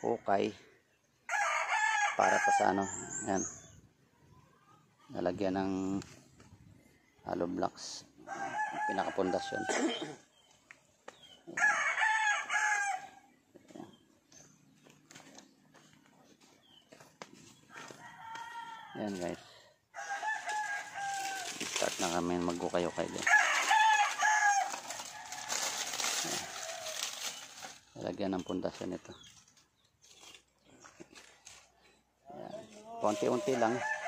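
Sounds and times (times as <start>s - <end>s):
rooster crowing: 1.3s - 3.4s, 8.2s - 10.1s, 11.5s - 13.3s, 17.7s - 27.0s, 33.0s - 34.0s.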